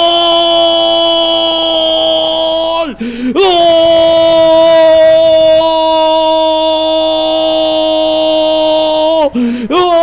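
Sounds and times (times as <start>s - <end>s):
commentator shouting goal: 0.0s - 10.0s.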